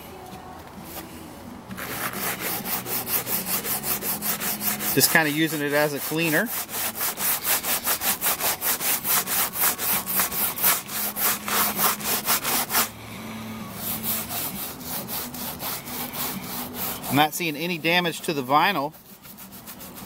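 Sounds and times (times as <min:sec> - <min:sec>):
cloth wiping vinyl: 0:00.3 - 0:20.0
brush scrubbing vinyl: 0:01.7 - 0:12.9, 0:13.7 - 0:20.0.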